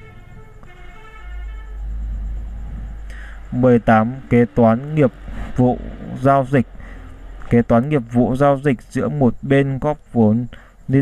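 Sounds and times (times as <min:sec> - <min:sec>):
faint pitched tone: 0:00.0 - 0:09.2
low rumble: 0:00.0 - 0:09.4.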